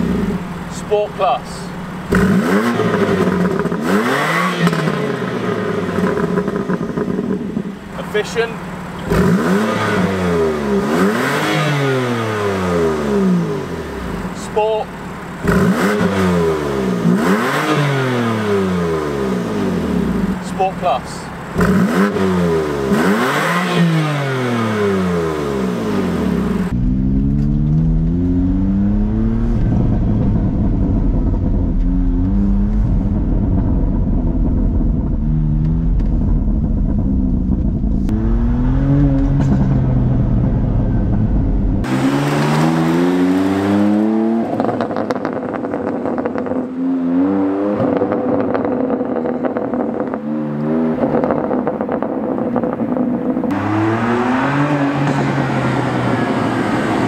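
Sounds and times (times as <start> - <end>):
car engine revving: 0.0 - 57.0
car engine under way: 0.0 - 57.0.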